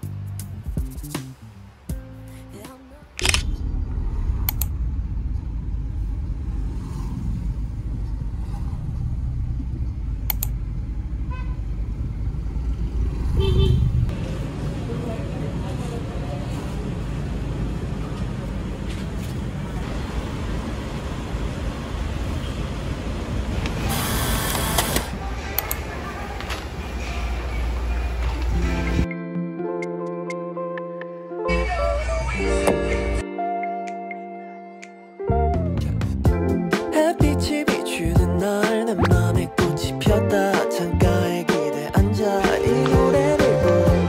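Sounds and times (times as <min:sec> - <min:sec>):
passing vehicles rumble: 0:00.0 - 0:29.1
car horn toot: 0:11.3 - 0:11.6, 0:13.4 - 0:14.0
background voices: 0:36.9 - 0:44.0.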